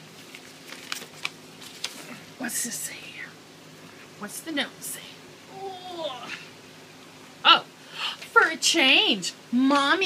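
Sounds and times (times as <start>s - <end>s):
paper rustling: 0.0s - 2.2s.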